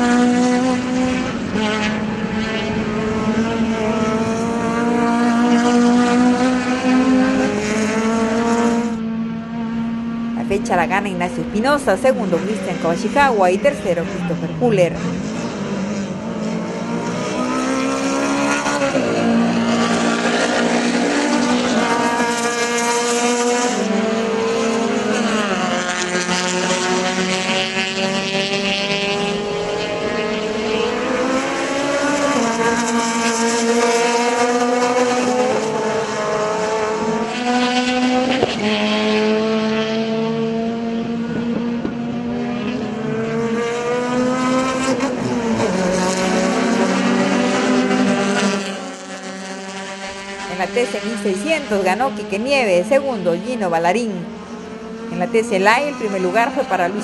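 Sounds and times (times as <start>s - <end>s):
racing car engines revving: 0.0s - 57.0s.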